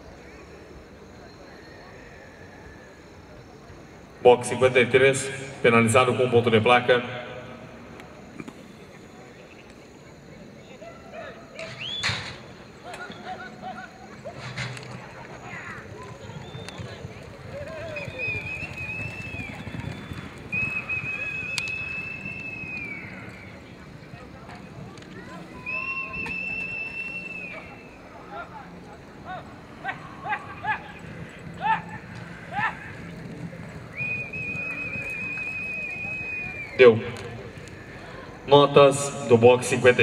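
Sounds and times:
horses working on dirt: 7.1 - 40.0
long high whistles: 11.6 - 12.3, 17.6 - 23.8, 25.5 - 28.2, 33.8 - 36.9
short rising calls: 17.8 - 23.8, 25.2 - 28.6, 29.2 - 38.5.

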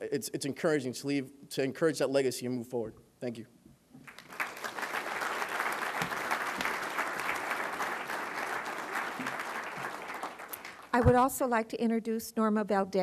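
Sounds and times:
audience applauding: 4.0 - 11.0.

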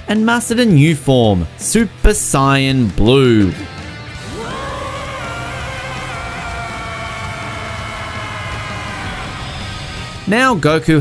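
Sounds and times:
background music: 0.0 - 11.0
man's high-pitched battle yell: 4.3 - 9.7.

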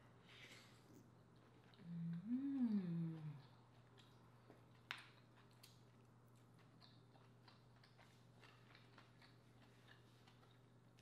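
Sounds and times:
low steady hum: 0.0 - 11.0
wet mouth clicks chewing: 1.5 - 10.7.

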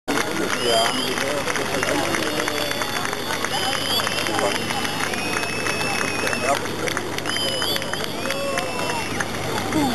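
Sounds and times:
onlookers talking: 0.1 - 9.9
fireworks crackling: 0.5 - 8.7.

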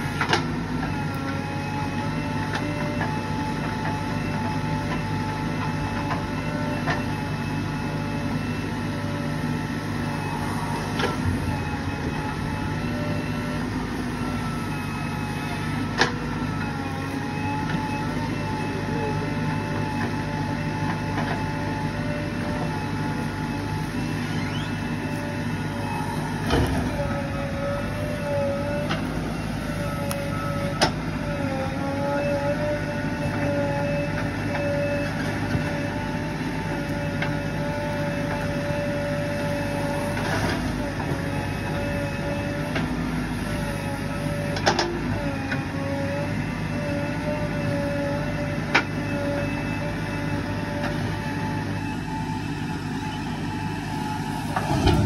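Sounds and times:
diesel engine whining under load: 0.0 - 55.0.

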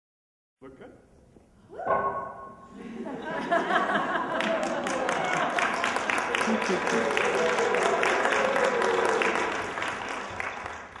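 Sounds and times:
group applauding: 3.9 - 11.0.

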